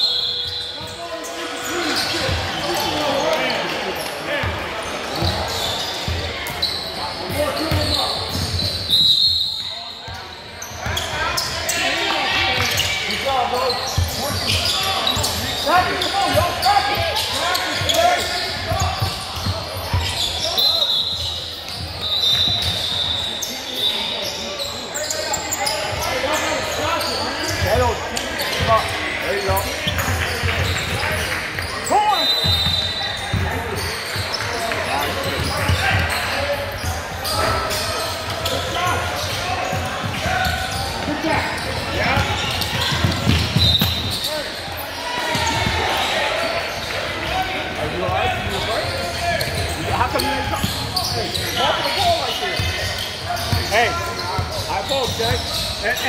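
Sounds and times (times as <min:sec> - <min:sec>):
spectator chatter and calls: 0:00.0 - 0:56.0.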